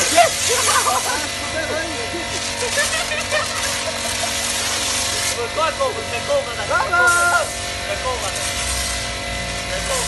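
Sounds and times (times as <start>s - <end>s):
pressure washer motor hum: 0.0s - 10.0s
pressure washer spray hiss: 0.0s - 10.0s.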